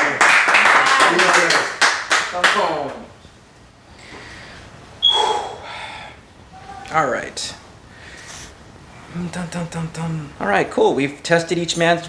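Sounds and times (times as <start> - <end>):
hand clapping: 0.0 - 3.0.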